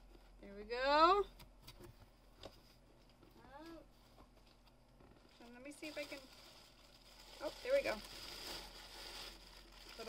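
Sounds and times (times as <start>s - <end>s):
tissue paper rustling: 5.2s - 10.0s.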